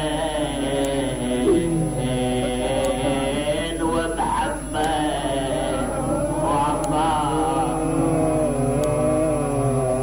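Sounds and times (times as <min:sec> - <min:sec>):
man chanting through microphone: 0:00.0 - 0:10.0.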